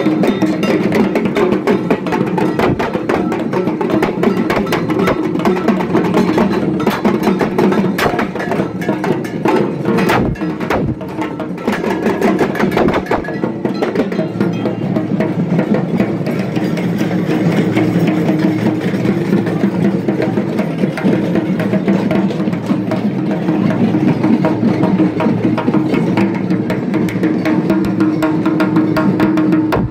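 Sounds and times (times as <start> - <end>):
barrel drums beaten rapidly: 0.0 - 29.9.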